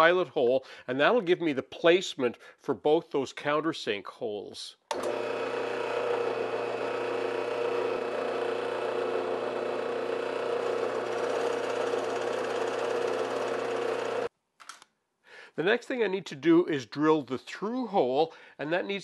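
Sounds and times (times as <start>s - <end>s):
drill press boring into wood: 4.9s - 14.3s.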